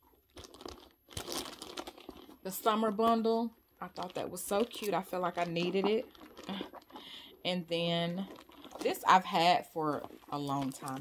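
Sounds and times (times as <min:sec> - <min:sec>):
handbag rustling and crinkling: 0:00.0 - 0:11.0.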